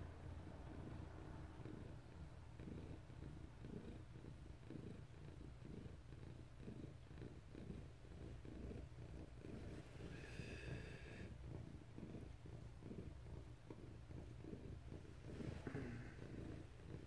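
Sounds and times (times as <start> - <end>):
cat purring: 0.0 - 17.0.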